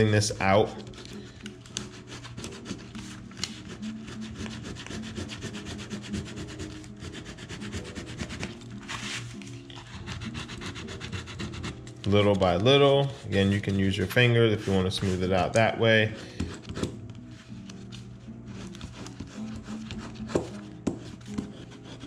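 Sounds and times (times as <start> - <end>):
knife scraping on paper: 0.3 - 12.2, 13.0 - 22.0.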